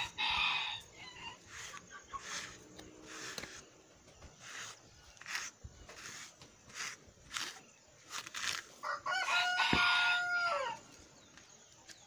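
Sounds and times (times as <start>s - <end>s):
rooster crowing: 0.0s - 1.7s, 8.8s - 10.8s
brush strokes through horse mane: 1.1s - 8.8s.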